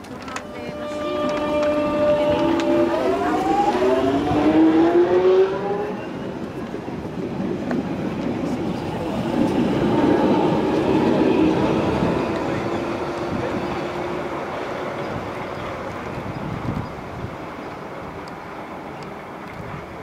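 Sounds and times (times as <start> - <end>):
approaching train whine: 0.0 - 19.5
wheel and rail rumble: 0.0 - 20.0
train inverter whine rising: 0.1 - 6.6.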